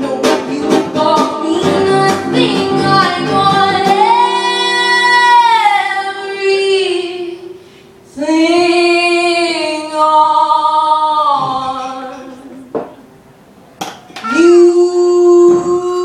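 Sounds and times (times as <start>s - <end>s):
acoustic guitar strumming: 1.6s - 7.6s
singer breathing: 7.5s - 8.1s.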